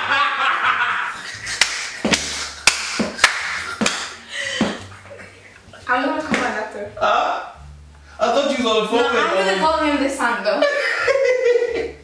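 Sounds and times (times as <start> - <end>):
hands slapping a cushion: 1.5 - 5.0, 6.2 - 6.6.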